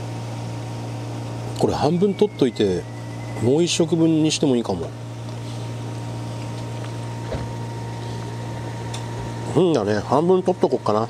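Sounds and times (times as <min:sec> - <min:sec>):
low mechanical hum: 0:00.0 - 0:11.0
thin high tone: 0:01.6 - 0:04.8.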